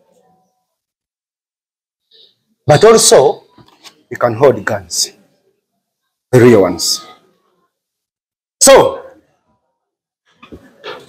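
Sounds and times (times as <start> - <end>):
man speaking: 2.7 - 3.5, 4.1 - 5.2, 6.3 - 7.2, 8.6 - 9.2.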